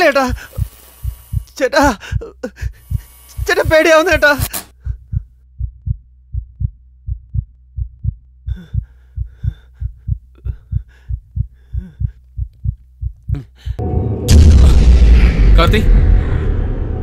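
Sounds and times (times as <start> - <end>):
heartbeat thumps: 0.3 - 3.8, 4.8 - 13.8.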